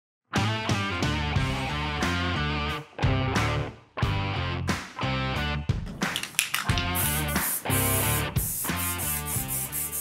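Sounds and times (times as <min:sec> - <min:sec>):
steady drum beat: 0:06.7 - 0:10.0.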